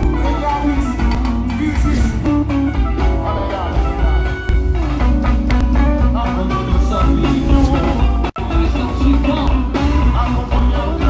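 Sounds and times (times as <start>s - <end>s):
band music with heavy bass: 0.0s - 11.0s.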